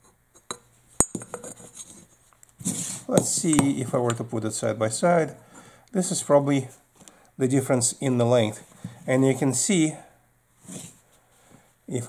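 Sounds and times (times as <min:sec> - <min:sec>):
metal tubes clicking and knocking: 0:00.0 - 0:01.7.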